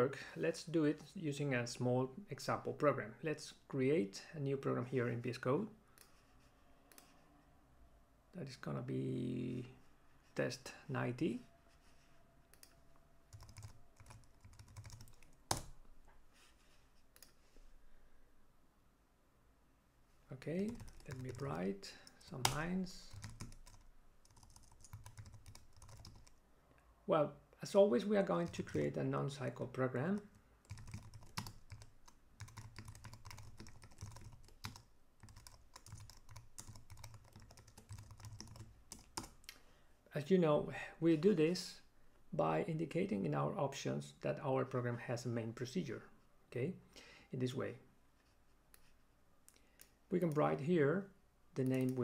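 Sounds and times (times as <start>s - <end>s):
keyboard typing: 12.5s - 15.7s, 20.7s - 26.4s, 30.2s - 39.4s.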